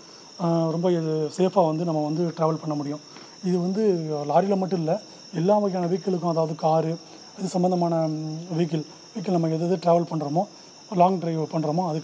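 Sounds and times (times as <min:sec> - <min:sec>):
high-pitched electronic whine: 0:00.0 - 0:12.0
man talking: 0:00.4 - 0:12.0.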